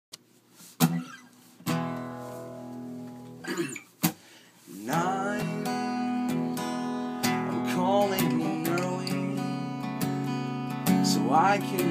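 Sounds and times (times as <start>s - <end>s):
acoustic guitar strumming: 0.8s - 11.9s.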